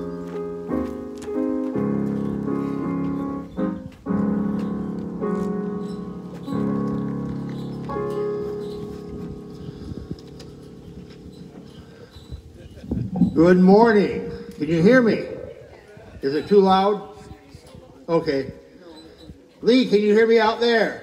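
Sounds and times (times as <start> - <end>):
electronic keyboard chords: 0.0 - 15.6.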